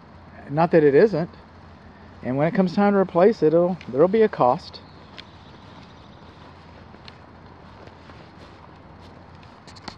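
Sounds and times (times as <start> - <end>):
low outdoor hum: 0.0 - 9.9.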